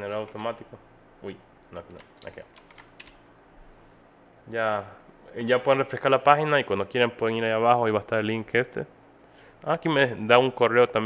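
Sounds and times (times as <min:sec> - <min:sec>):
keyboard keystroke clicks: 0:01.8 - 0:03.2.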